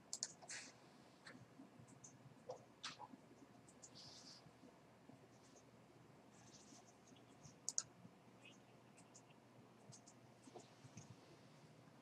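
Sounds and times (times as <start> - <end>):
sharp clicks: 0.1 - 0.4, 7.6 - 7.9
faint computer clicks: 0.1 - 0.6, 7.5 - 7.9, 8.5 - 11.2.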